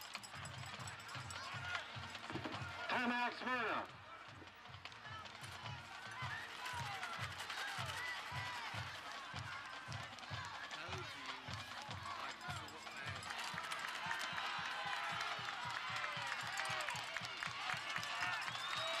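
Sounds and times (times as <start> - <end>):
stadium crowd chatter: 0.0 - 19.0.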